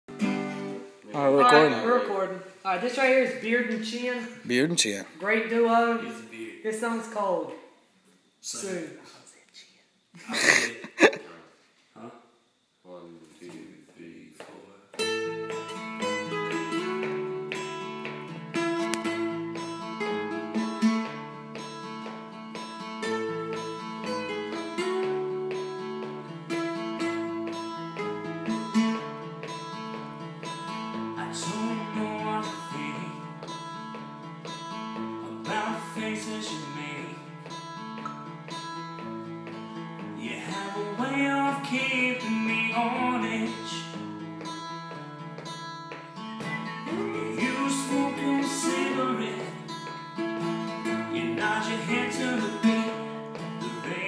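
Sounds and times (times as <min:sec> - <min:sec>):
acoustic guitar strumming: 0:00.1 - 0:07.2, 0:15.0 - 0:54.0
person singing: 0:31.2 - 0:33.3, 0:46.8 - 0:49.7, 0:51.0 - 0:54.0.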